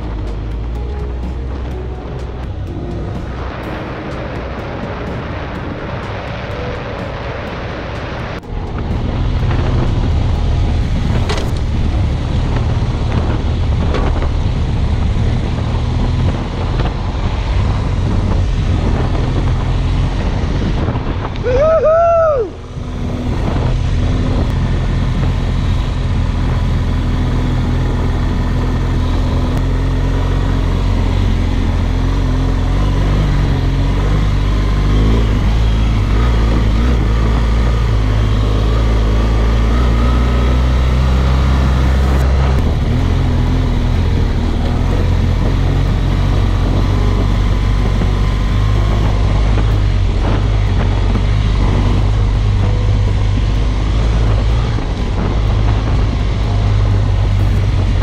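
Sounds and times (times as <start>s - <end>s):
motorcycle engine running: 0.0s - 21.5s, 22.5s - 58.0s
wind: 0.0s - 58.0s.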